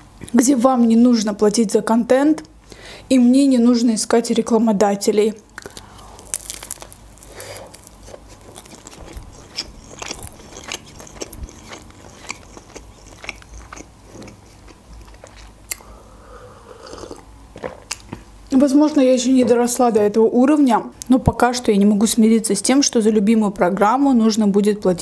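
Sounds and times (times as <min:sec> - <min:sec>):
biting into wrap: 0:05.6 - 0:15.8
chewing with crackles: 0:05.6 - 0:15.9, 0:16.8 - 0:18.2
mouth clicks: 0:15.7 - 0:16.0.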